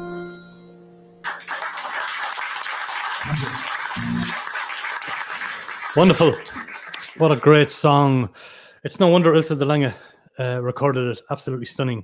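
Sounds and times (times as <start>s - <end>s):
audience clapping: 1.2s - 8.0s
person's voice: 3.2s - 4.2s, 6.0s - 6.5s.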